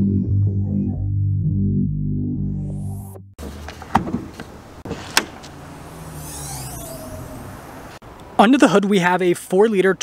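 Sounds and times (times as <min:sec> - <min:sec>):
low hum: 0:04.6 - 0:08.0.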